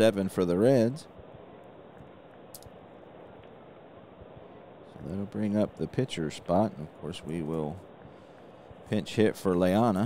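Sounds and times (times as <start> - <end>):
faint light clicks: 2.0 - 3.6.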